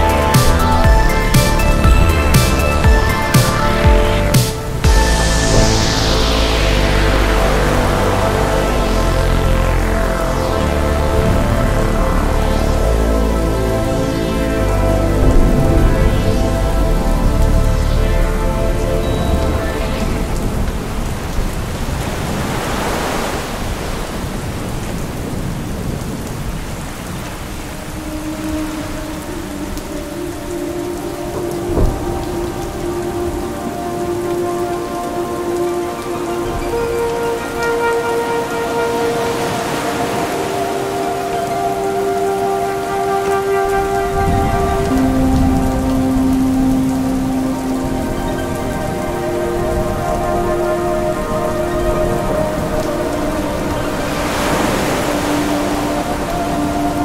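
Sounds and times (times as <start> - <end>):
low thunder rumbles: 0.0 - 13.8, 14.4 - 22.5
synthesizer drone: 0.0 - 22.9, 24.0 - 57.0
steady rain: 0.0 - 57.0.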